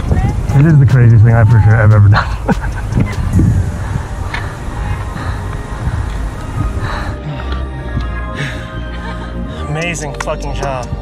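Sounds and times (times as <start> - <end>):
wind buffeting microphone: 0.0 - 7.2
faint background music: 0.0 - 11.0.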